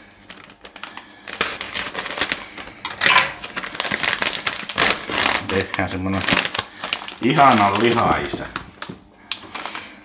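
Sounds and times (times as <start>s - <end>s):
plastic pouch crinkling: 0.0s - 10.0s.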